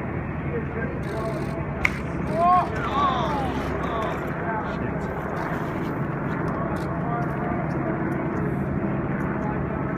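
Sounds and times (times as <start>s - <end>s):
steady rumbling noise: 0.0s - 9.9s
faint voices: 0.4s - 9.9s.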